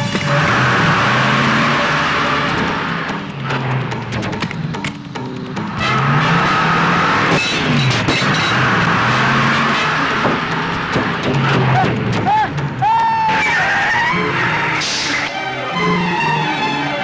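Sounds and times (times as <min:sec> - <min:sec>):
lorry engine running: 0:00.0 - 0:17.0
tyres skidding: 0:00.0 - 0:17.0
high wailing glides: 0:11.5 - 0:17.0.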